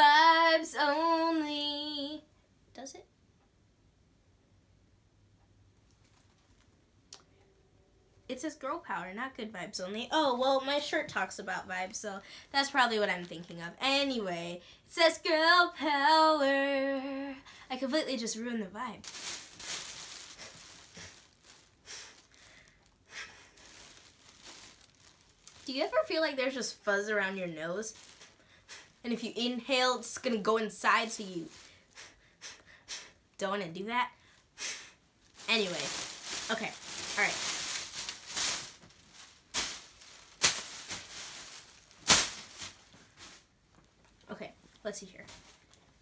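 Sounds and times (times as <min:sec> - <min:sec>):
plastic bag rustling: 0:19.0 - 0:26.5, 0:27.6 - 0:28.5, 0:30.8 - 0:31.9, 0:35.2 - 0:44.0, 0:45.1 - 0:46.0.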